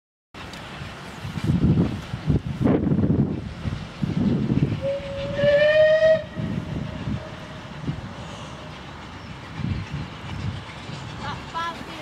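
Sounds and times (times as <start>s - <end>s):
wind rumble on microphone: 0.7s - 8.4s, 9.4s - 12.0s
steam locomotive whistle: 4.8s - 7.7s.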